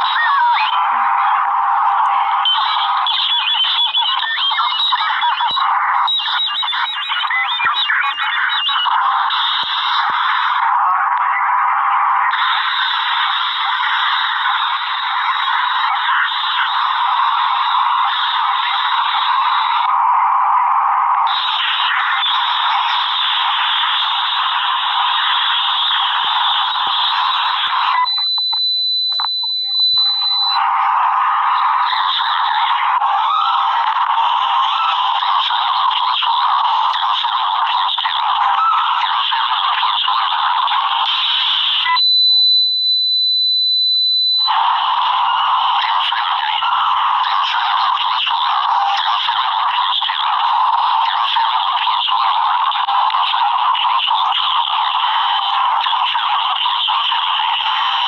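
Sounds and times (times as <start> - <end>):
sped-up squeaky voices and music: 0.0 - 19.9, 21.2 - 28.1, 30.6 - 42.0, 44.5 - 58.0
steady high beep: 0.1 - 9.6, 25.8 - 30.8, 41.8 - 49.8.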